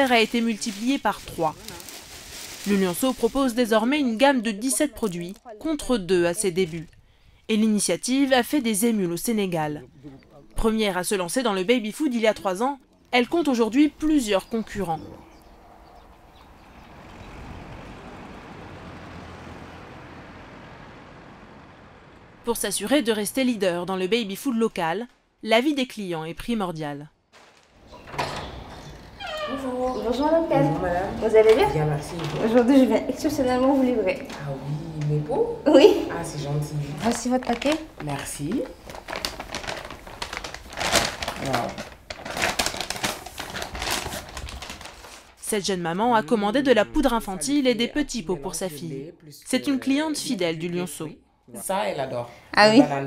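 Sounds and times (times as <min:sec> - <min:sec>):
paper bag rustling and crinkling: 0:00.0 - 0:05.4, 0:27.3 - 0:28.3, 0:36.8 - 0:45.5
road traffic passing: 0:13.6 - 0:23.8, 0:27.9 - 0:38.9.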